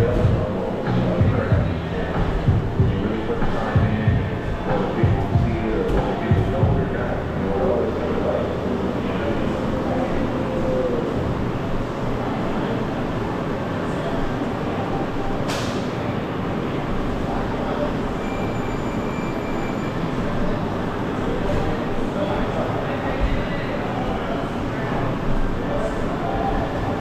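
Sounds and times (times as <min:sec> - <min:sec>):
indistinct voices: 0:00.0 - 0:27.0.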